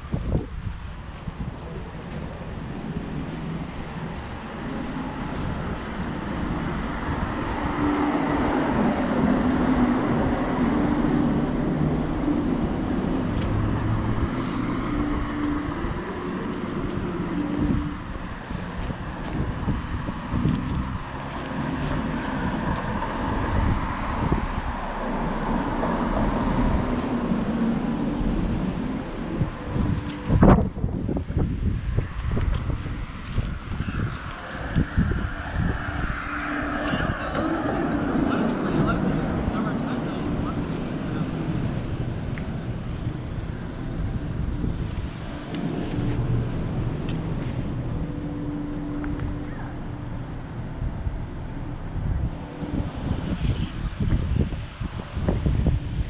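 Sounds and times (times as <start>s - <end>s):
car engines running: 0.0s - 56.0s
steady traffic hum: 0.0s - 56.0s
tyres passing on road: 0.0s - 56.0s.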